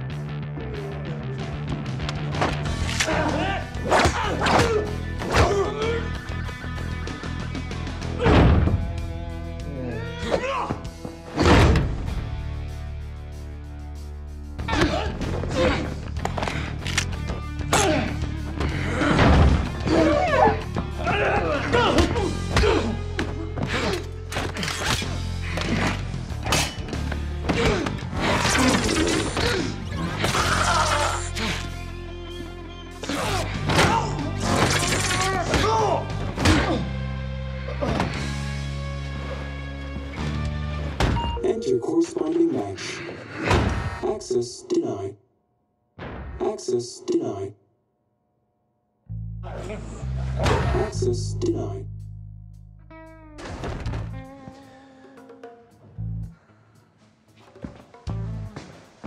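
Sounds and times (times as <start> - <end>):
film score with held notes: 0.0 - 59.0.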